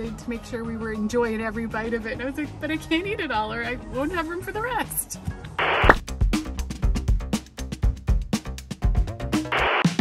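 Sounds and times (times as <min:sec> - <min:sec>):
music with drum beat: 0:05.6 - 0:10.0.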